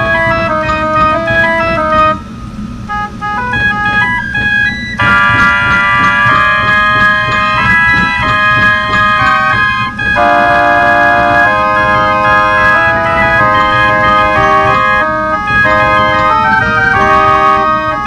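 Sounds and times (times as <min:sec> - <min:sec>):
steady beat: 0:00.0 - 0:02.2, 0:03.0 - 0:17.8
organ music: 0:00.0 - 0:18.0.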